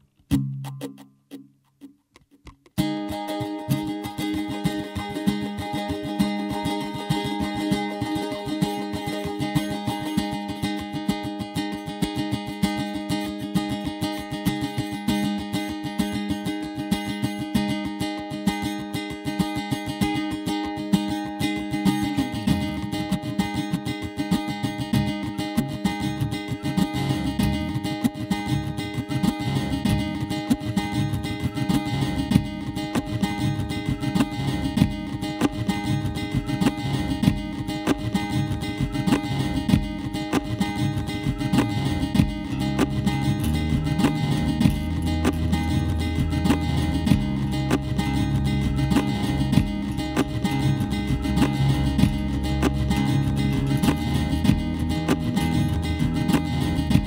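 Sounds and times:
picked guitar pattern: 0.0 - 57.0
deep bassy guitar layer: 2.8 - 57.0.

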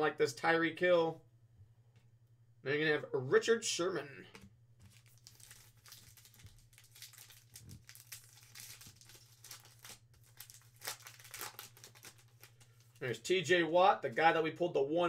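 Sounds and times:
foil wrapper tearing and crinkling: 4.8 - 13.0.

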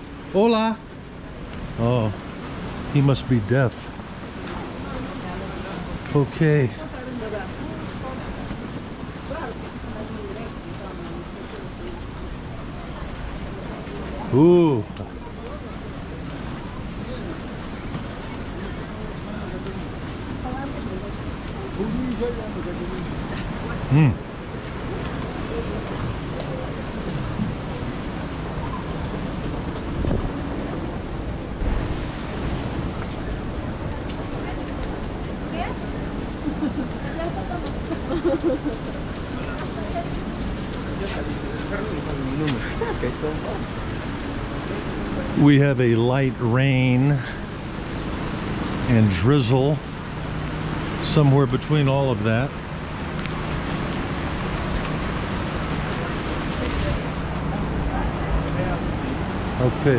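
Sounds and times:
light rain hissing: 0.0 - 59.9.

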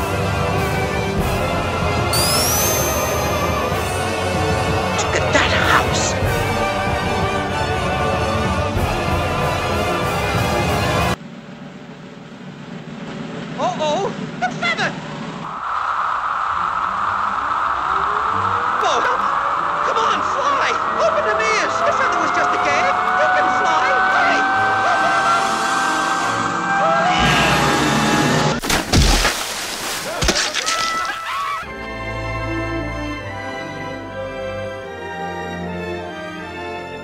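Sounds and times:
long rising whine: 2.2 - 5.0, 15.4 - 28.6
cartoon music: 2.2 - 6.2
noisy rush with cries: 2.2 - 8.8, 15.4 - 28.6
cartoon voices: 5.0 - 6.2.

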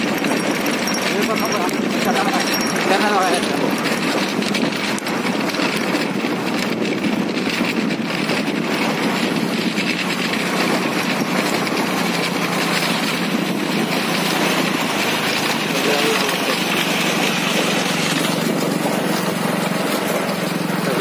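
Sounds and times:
small engine droning: 0.0 - 21.0.

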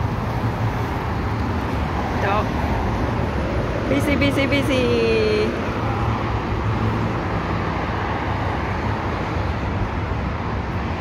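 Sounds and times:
highway traffic rumble: 0.0 - 11.0.

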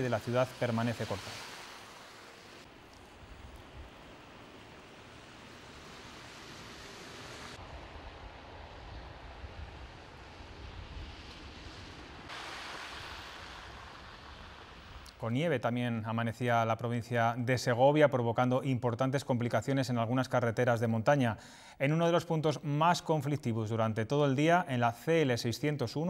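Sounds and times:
low street rumble: 0.0 - 15.5
steady hiss of falling snow: 0.0 - 17.7.

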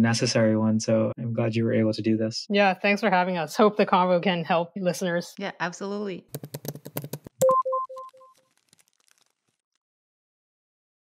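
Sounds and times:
rapid run of clicks: 6.3 - 8.8
echoing electronic beep: 7.4 - 8.4.

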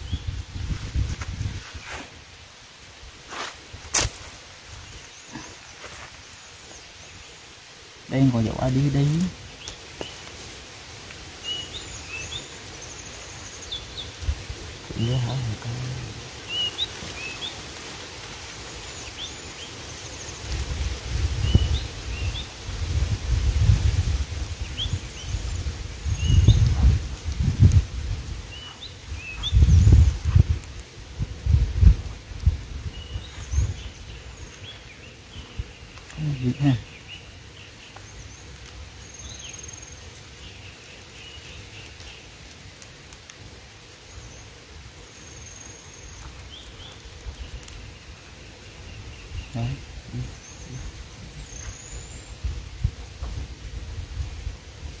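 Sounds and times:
small birds chirping: 0.0 - 2.4, 3.3 - 55.0.

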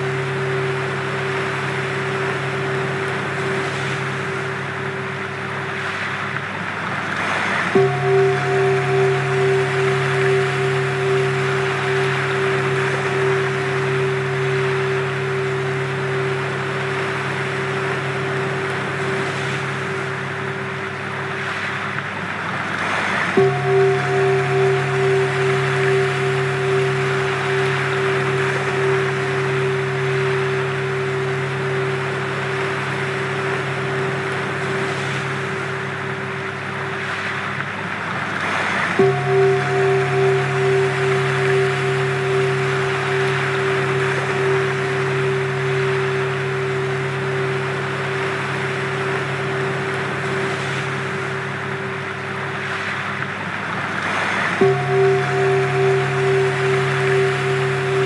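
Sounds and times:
steady held drone tones: 0.0 - 58.0
surf-like rushing: 0.0 - 58.0.

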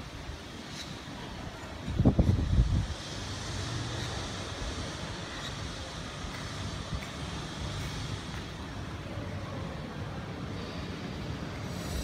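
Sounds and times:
distant road traffic hum: 0.0 - 12.0.

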